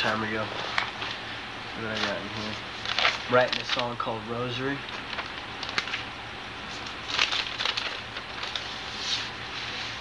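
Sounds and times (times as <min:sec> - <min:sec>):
background hiss and hum: 0:00.0 - 0:10.0
paper rustling and crinkling: 0:01.8 - 0:04.1, 0:04.8 - 0:06.1, 0:06.7 - 0:10.0.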